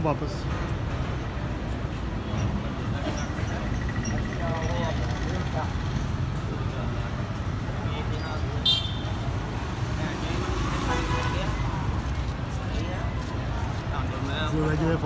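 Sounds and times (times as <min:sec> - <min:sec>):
traffic rumble: 0:00.0 - 0:15.0.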